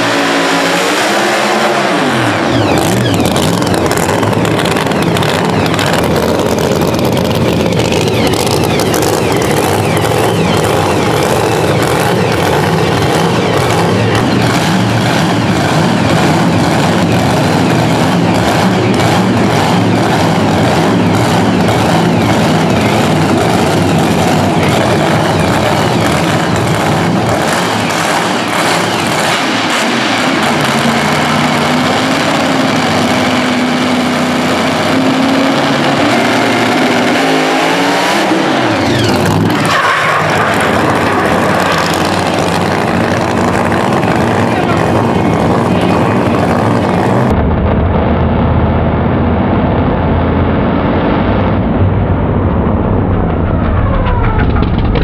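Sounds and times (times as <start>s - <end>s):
drag car engine revving loudly: 0.0s - 55.0s.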